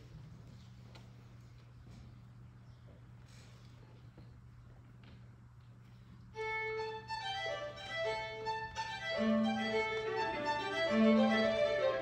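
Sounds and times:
low steady hum: 0:00.0 - 0:12.0
string quartet playing: 0:06.4 - 0:12.0.

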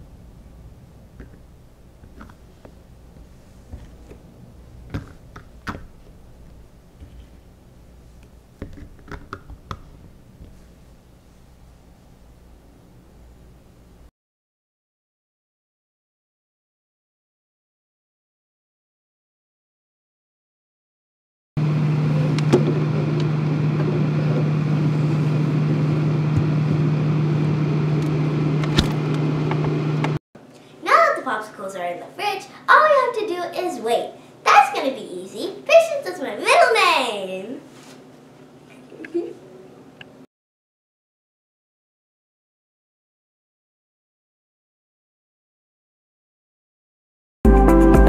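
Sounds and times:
refrigerator humming: 0:21.6 - 0:30.7.

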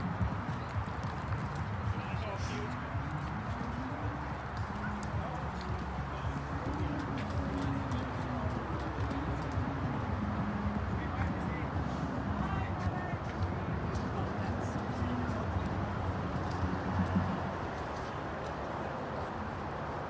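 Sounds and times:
indistinct voices talking: 0:00.0 - 0:19.6.

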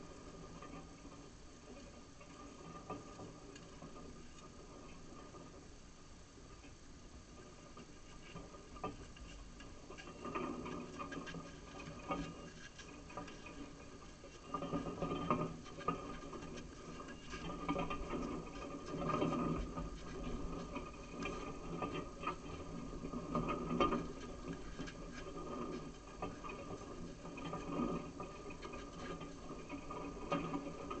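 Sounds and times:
steady low hum: 0:00.0 - 0:31.0.

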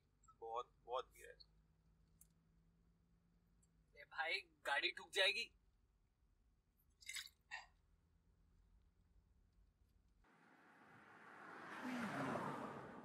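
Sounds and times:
car interior drone: 0:10.3 - 0:13.0
car passing on road: 0:10.3 - 0:13.0.

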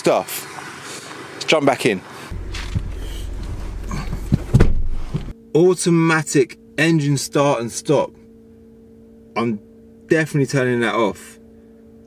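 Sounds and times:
car engine idling: 0:02.3 - 0:05.3.

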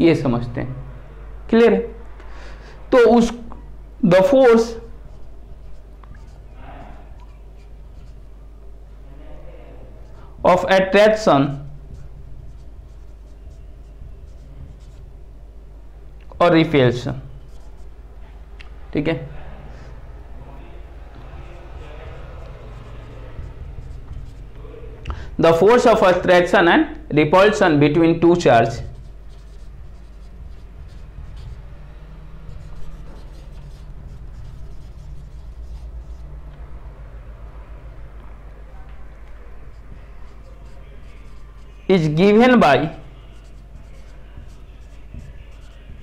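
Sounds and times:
low steady hum: 0:00.0 - 0:46.0
marker pen on whiteboard: 0:01.6 - 0:15.4, 0:16.2 - 0:46.0.

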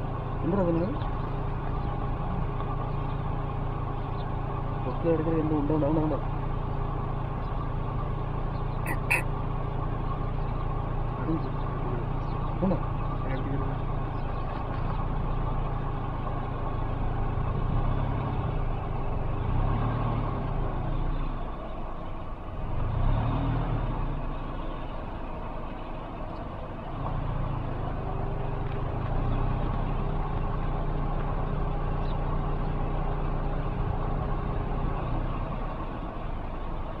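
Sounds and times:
vehicle engine idling: 0:00.0 - 0:37.0.

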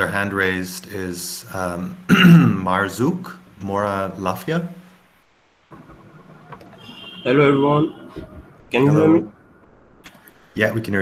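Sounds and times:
room noise hiss and hum: 0:00.0 - 0:11.0.

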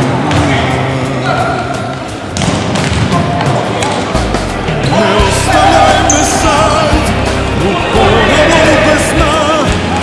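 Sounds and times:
drum beats: 0:00.0 - 0:10.0
sustained instrumental notes: 0:04.2 - 0:09.6.

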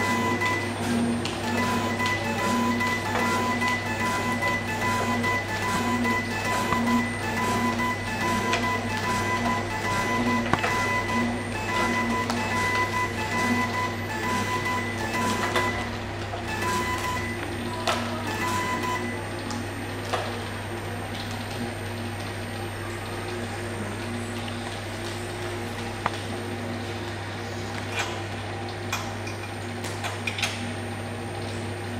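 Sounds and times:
machine beep: 0:00.0 - 0:19.8
motor and conveyor hum: 0:00.0 - 0:31.9.

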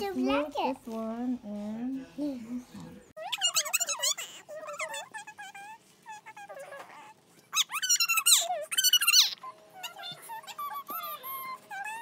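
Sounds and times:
high-pitched squealing cries: 0:03.2 - 0:12.0.

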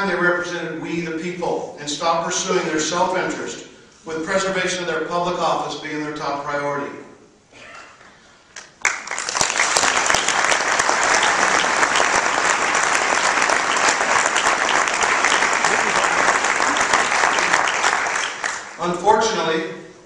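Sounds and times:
audience applauding: 0:08.6 - 0:19.0.

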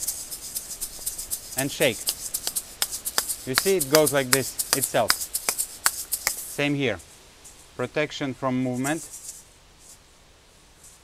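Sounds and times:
faint rubbing and rustling: 0:00.0 - 0:11.0.

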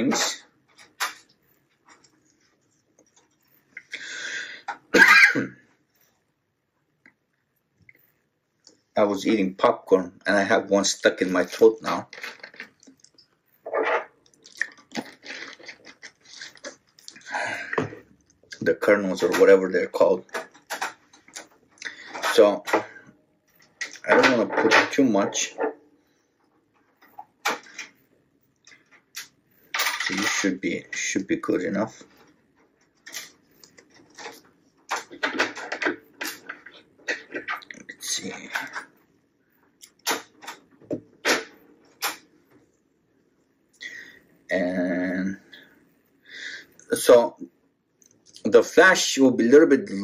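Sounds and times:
person gulping water: 0:14.3 - 0:17.3.

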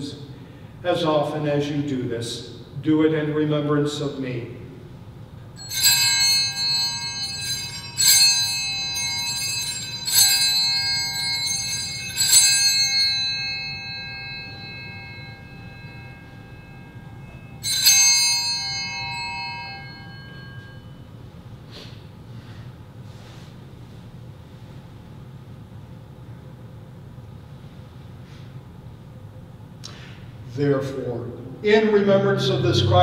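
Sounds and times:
altar bells ringing: 0:05.5 - 0:21.4, 0:31.6 - 0:33.0.

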